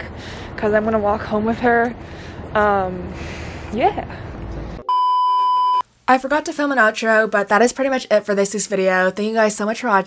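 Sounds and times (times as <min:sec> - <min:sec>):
steady electronic beep: 0:04.8 - 0:05.8.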